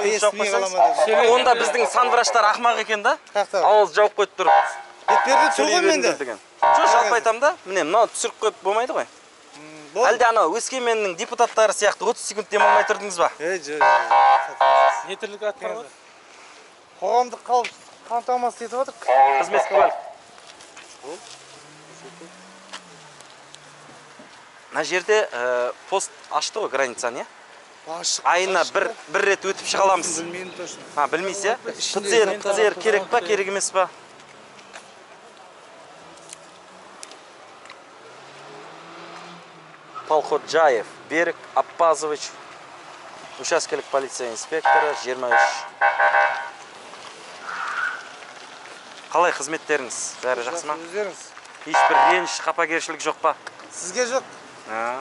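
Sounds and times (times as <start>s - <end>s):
outdoor background hiss: 0.0s - 55.0s
soft rustle: 15.8s - 19.1s, 20.1s - 25.1s, 46.3s - 51.7s.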